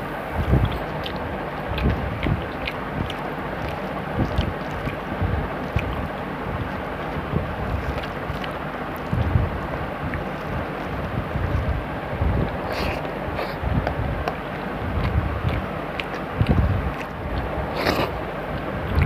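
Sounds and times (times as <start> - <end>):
faint clicks of eating: 0.0 - 19.0
wind rushing on microphone: 0.3 - 8.5, 9.1 - 12.9, 13.6 - 15.7, 16.3 - 19.0.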